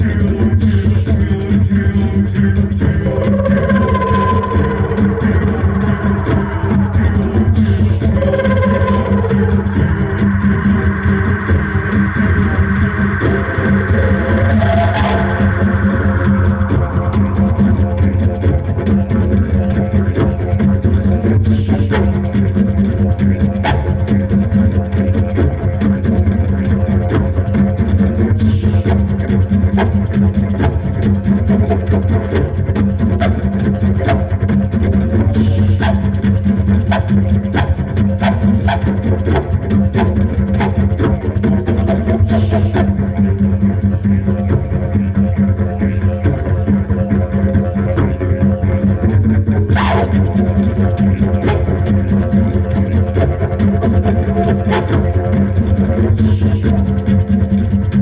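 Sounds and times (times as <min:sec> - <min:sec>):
didgeridoo drone: 0:00.0 - 0:58.0.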